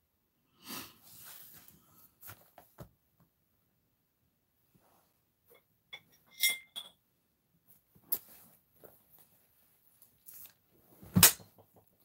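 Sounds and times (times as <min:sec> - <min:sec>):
glassware clinking: 0:05.9 - 0:07.0.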